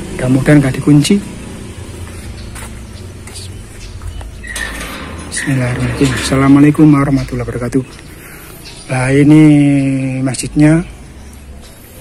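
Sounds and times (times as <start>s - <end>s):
light metallic clinks: 3.8s - 8.9s
gate scraping squeak: 4.0s - 8.1s.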